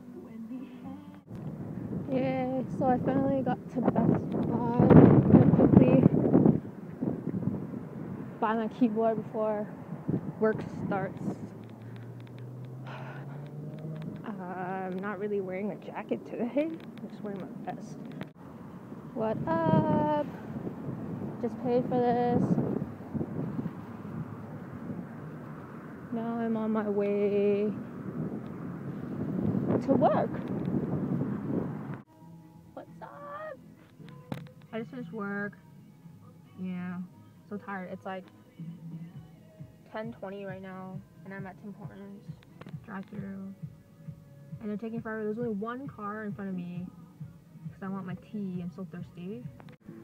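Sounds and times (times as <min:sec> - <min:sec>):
faint car interior background: 0:00.0 - 0:01.3, 0:02.0 - 0:07.6, 0:14.1 - 0:18.3, 0:21.3 - 0:24.2, 0:32.0 - 0:50.0
street traffic: 0:00.0 - 0:50.0
wind buffeting microphone: 0:01.2 - 0:32.1.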